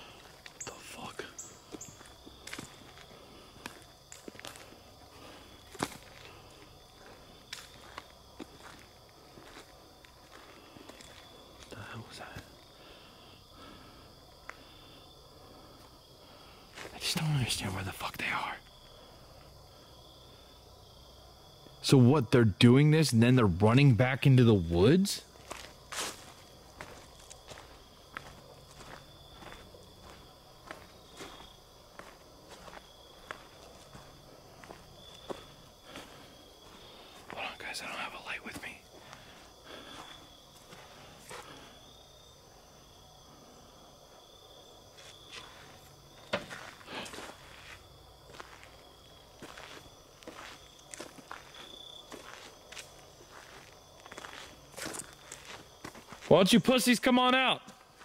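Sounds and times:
footsteps on forest floor: 0.0 - 12.7, 16.7 - 17.4, 25.3 - 38.0, 38.6 - 42.0, 44.9 - 56.7, 57.7 - 58.0.

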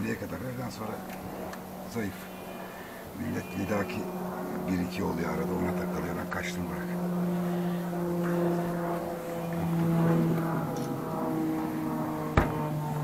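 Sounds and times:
engine droning hum: 0.0 - 13.0.

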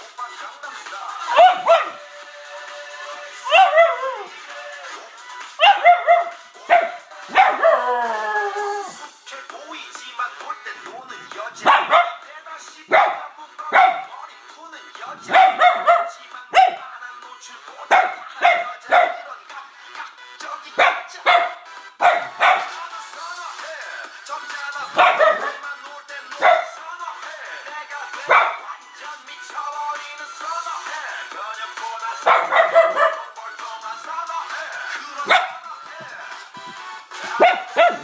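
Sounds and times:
pop music from laptop: 0.0 - 38.0
small dog barking: 1.3 - 2.0, 3.5 - 4.0, 5.6 - 7.8, 11.6 - 12.2, 12.9 - 14.1, 15.3 - 16.8, 17.9 - 19.2, 20.8 - 22.7, 25.0 - 25.6, 26.4 - 26.8, 28.3 - 28.6, 32.2 - 33.3, 35.3 - 35.6, 37.4 - 38.0.

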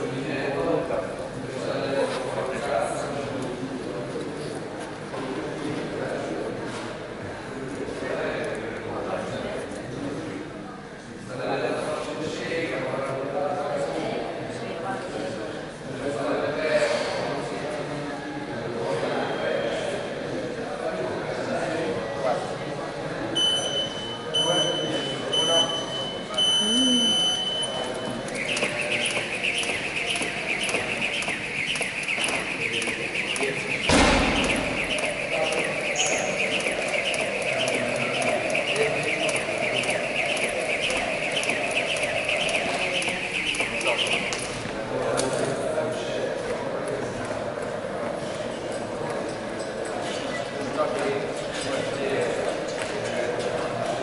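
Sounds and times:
interval timer beeps: 23.4 - 44.7
jump rope whirring and slapping: 28.2 - 44.8
loud thump: 33.9 - 35.1.

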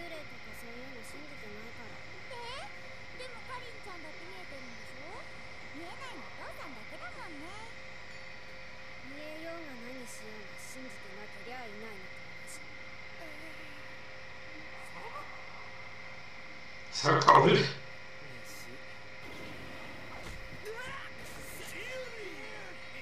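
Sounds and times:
faint cartoon dialogue: 0.0 - 7.8, 14.5 - 15.7, 16.9 - 23.0
thin electrical whine: 0.0 - 23.0.

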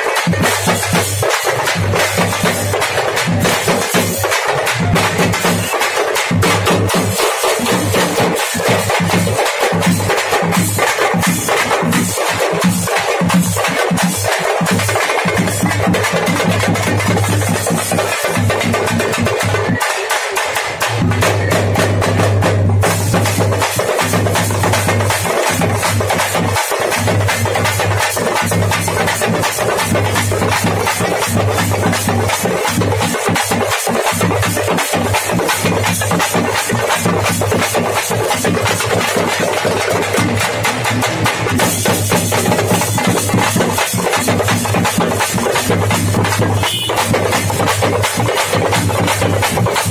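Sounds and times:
frame drums beaten fast: 0.0 - 49.9.

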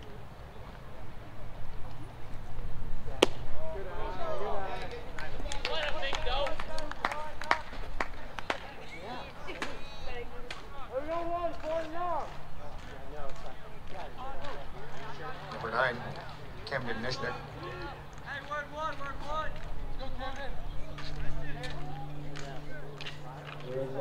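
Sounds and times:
baseball sharp crack: 3.1 - 3.8, 9.5 - 9.8
people clapping: 4.9 - 9.8, 10.4 - 16.4, 18.2 - 23.8.

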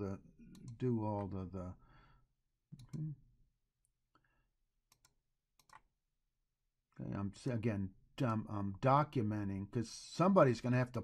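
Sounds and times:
computer mouse clicks: 0.5 - 0.8, 2.8 - 3.1, 4.9 - 5.9.

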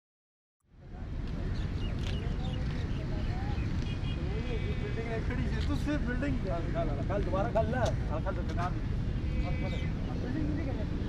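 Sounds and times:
city traffic rumble: 0.6 - 11.0
men talking: 1.0 - 11.0.

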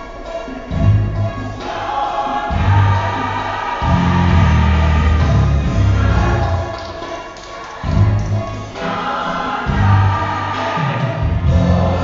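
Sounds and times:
gospel choir singing: 0.0 - 12.0
deep steady bass line: 2.5 - 3.2, 3.8 - 6.7, 11.4 - 12.0.

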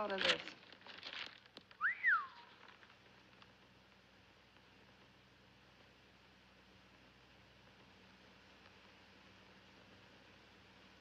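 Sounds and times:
film soundtrack hiss: 0.0 - 11.0
rising and falling whistle: 1.8 - 2.5.

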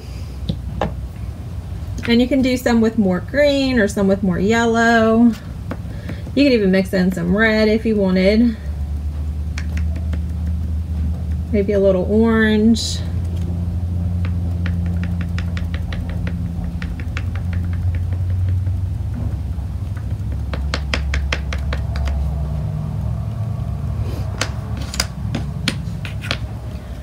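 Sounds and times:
steady low hum: 0.0 - 27.0
sponge tapping on wood: 14.2 - 19.2, 19.8 - 22.2.

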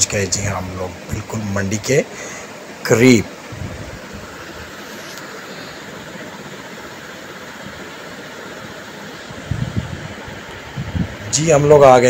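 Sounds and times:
wind buffeting microphone: 3.5 - 4.8, 9.2 - 12.0
wind and road noise: 3.5 - 5.2, 9.2 - 12.0.

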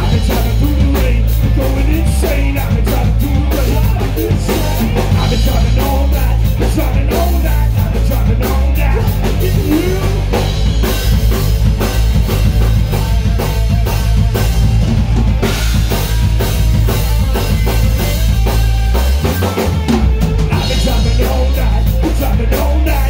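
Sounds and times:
rock band playing: 0.0 - 23.0.

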